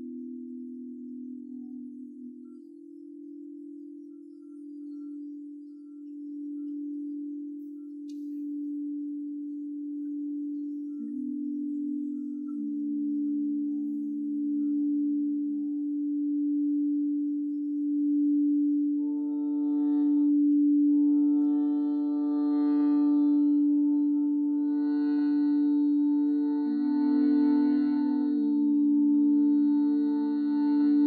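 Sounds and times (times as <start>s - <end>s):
reedy drone: 0.0s - 31.0s
singing bowl low tone: 0.0s - 31.0s.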